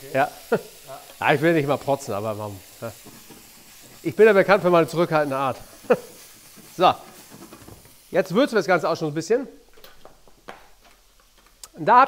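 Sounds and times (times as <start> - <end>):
bacon sizzling in a pan: 0.0 - 12.0.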